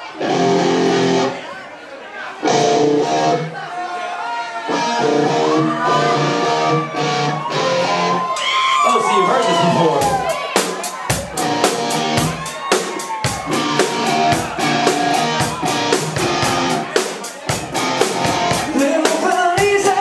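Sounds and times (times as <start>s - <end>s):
electric guitar: 0.1s - 1.4s, 2.4s - 3.5s, 4.7s - 8.4s, 11.3s - 20.0s
drum kit beat: 9.5s - 20.0s
man singing: 18.6s - 20.0s.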